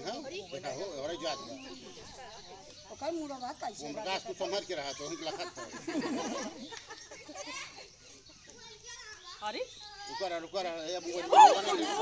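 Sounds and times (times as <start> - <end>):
people and children talking: 0.0 - 12.0.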